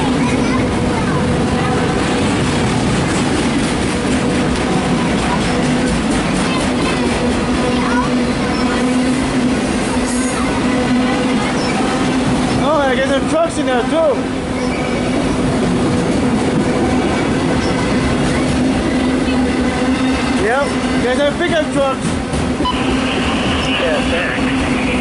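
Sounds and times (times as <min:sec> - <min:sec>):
train wheels rumbling on rail: 0:00.0 - 0:25.0.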